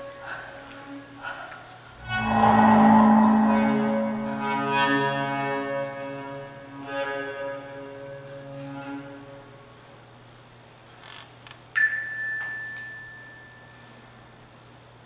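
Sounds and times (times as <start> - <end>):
bell-like ding: 2.0 - 5.7
low drone: 2.0 - 9.4
held music chord: 2.0 - 9.5.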